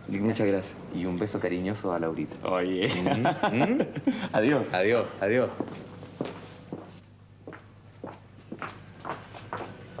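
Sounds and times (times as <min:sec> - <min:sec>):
footsteps on hard surface: 0:05.6 - 0:10.0.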